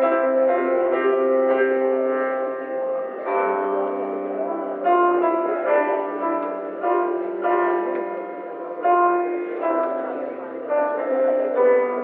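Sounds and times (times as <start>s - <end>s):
piano chords ringing: 0.0s - 12.0s.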